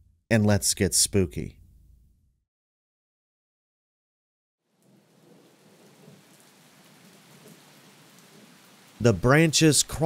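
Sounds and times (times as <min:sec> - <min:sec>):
faint rain hiss: 0:04.7 - 0:10.0.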